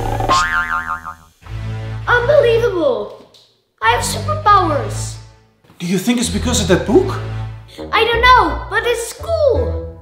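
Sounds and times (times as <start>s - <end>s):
cartoon boing: 0.1s - 1.3s.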